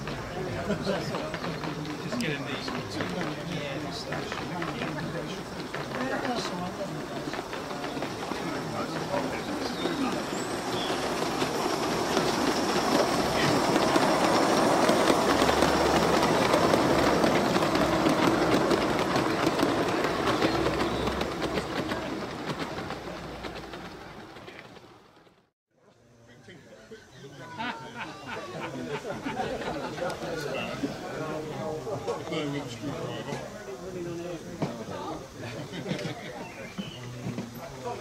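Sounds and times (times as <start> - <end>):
model train wheels rumbling: 0.0 - 25.5, 28.5 - 38.0.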